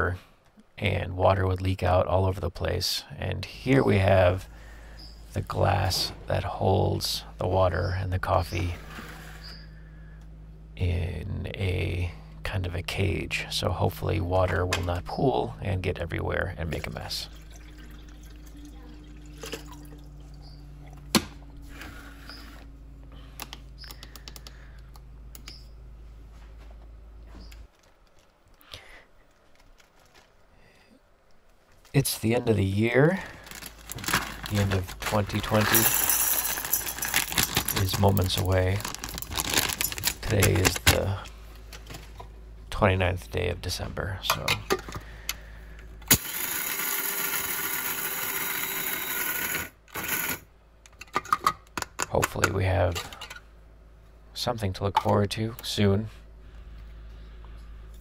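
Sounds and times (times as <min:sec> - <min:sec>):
coffee grinder motor running: 0:46.1 - 0:50.4.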